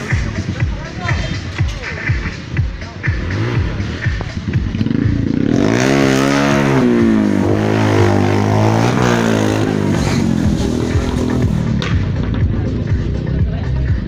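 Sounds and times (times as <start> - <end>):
motorcycle engine revving: 0.0 - 14.0.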